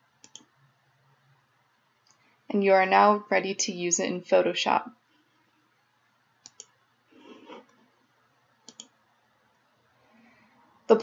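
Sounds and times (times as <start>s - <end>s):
computer mouse clicks: 0.2s - 0.6s, 6.4s - 6.8s, 8.6s - 9.0s.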